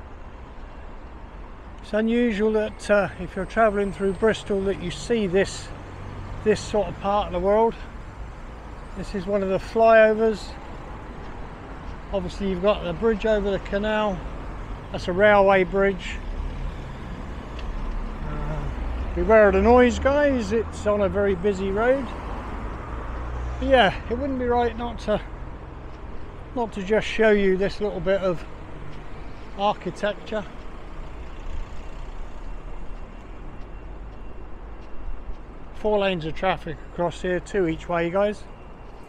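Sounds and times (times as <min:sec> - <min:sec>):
cars passing on road: 0:00.0 - 0:39.0.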